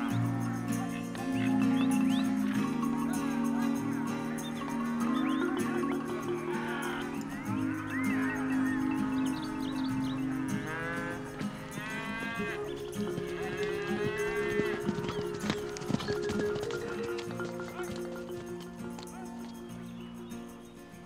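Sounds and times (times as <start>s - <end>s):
cattle mooing: 0.0s - 19.6s
music of long held notes: 0.0s - 21.0s.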